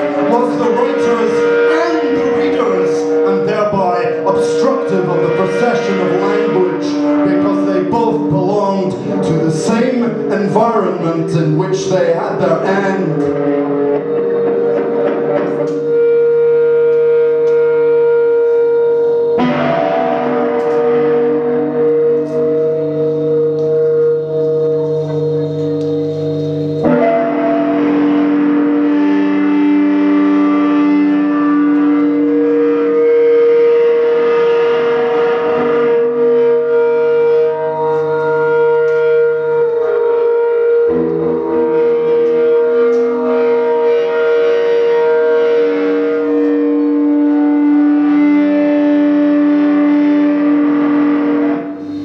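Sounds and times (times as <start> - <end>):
electric guitar drone: 0.0 - 52.0.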